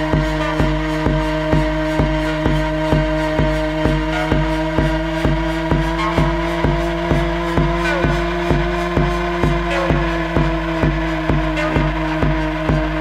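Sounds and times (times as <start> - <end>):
gliding synth sweeps: 0.0 - 13.0
steady kick drum: 0.0 - 13.0
sustained synth drone: 0.0 - 13.0.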